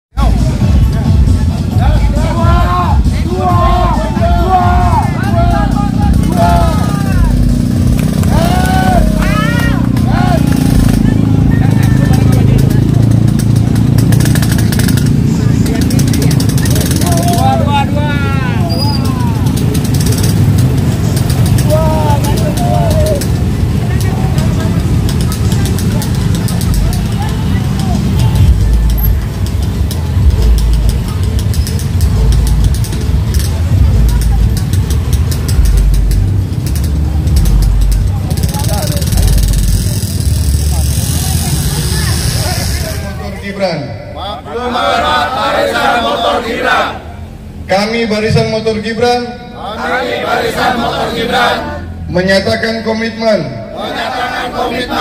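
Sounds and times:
motorcycle engines rumbling: 0.1s - 55.0s
voices calling out: 0.3s - 47.7s, 49.5s - 52.1s, 53.6s - 55.0s.

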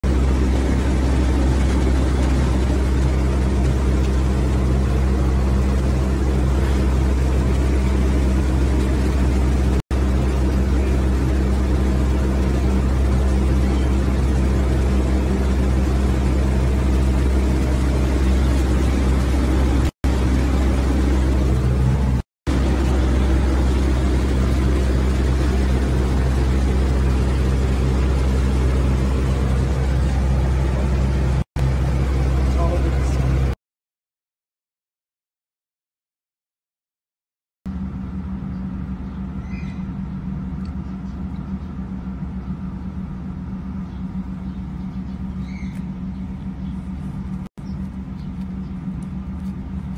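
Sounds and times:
low mechanical hum: 0.0s - 33.6s, 37.7s - 49.9s.

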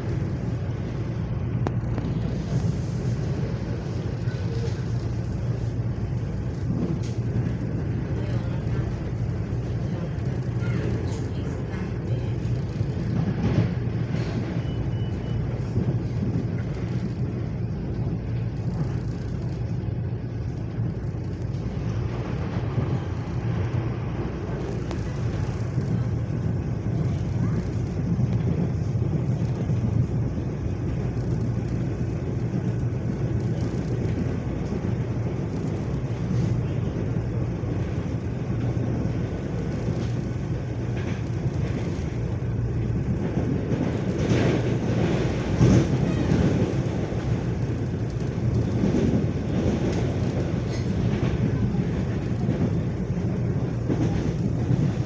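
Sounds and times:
train wheels rumbling on rail: 0.0s - 55.0s.

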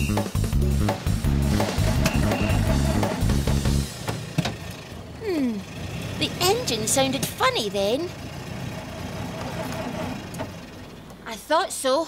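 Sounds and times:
car engine cranking: 0.0s - 11.9s.

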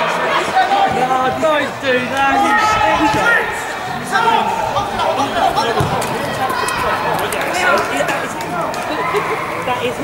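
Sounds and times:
voices calling out and talking: 0.0s - 10.0s.

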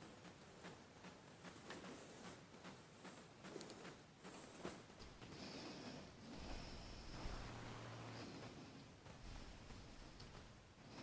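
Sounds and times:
faint high steady whine: 0.0s - 11.0s
faint low hum: 0.0s - 11.0s.

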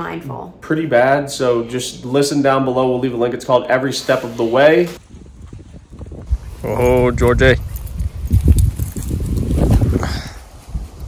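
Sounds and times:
microphone handling noise: 4.9s - 11.0s
wind rumble: 5.0s - 11.0s.

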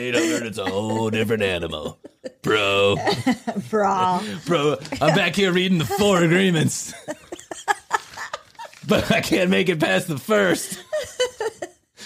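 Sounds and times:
people talking: 0.0s - 11.2s.

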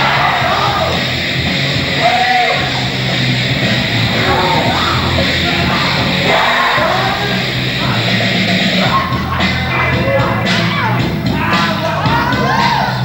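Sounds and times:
bass line: 2.6s - 10.2s
heavy rock music: 2.7s - 9.5s.

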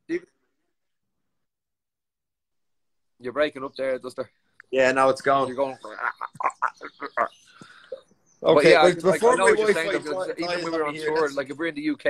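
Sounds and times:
man laughing out loud: 5.9s - 7.4s.

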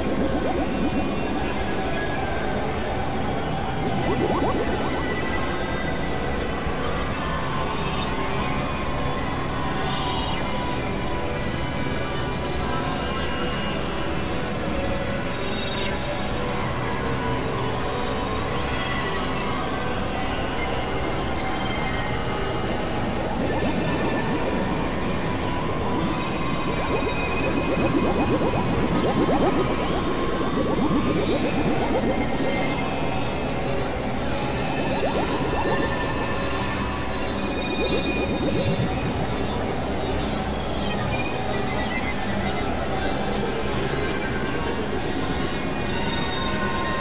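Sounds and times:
high squealing synth tones: 0.0s - 6.1s, 21.7s - 40.6s
dense noise wash: 0.0s - 6.4s, 21.8s - 40.6s.

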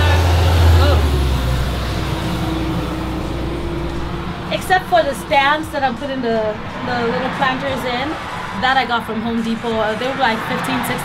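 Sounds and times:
vehicle passing by: 0.0s - 11.0s.

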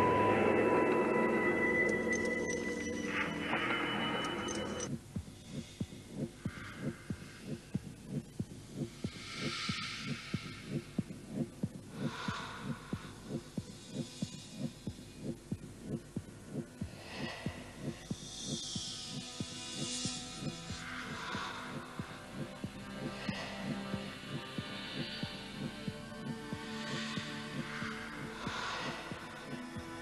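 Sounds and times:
airy swells: 0.0s - 4.9s
low throbbing pulse: 0.0s - 30.0s.

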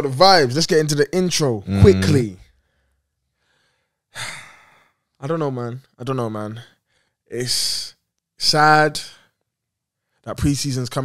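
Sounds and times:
person sighing: 1.7s - 2.3s.

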